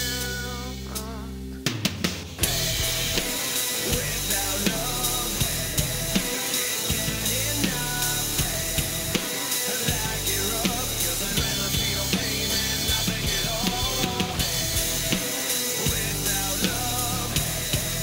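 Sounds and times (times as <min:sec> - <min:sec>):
recorded rock song: 0:00.0 - 0:18.0
rock drum kit played hard: 0:00.0 - 0:18.0.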